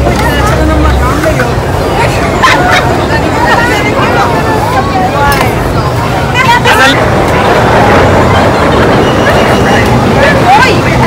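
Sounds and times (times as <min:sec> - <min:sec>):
loud steady rumbling: 0:00.0 - 0:11.0
people's voices: 0:00.0 - 0:11.0.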